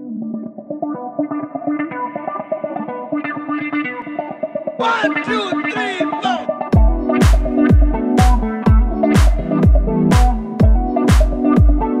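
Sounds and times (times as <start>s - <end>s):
background music with repeated notes: 0.0s - 12.0s.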